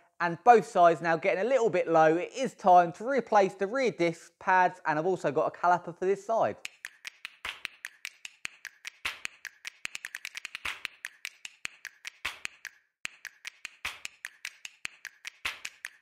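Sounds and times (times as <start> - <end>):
sharp percussive clicks and taps: 6.6 - 16.0.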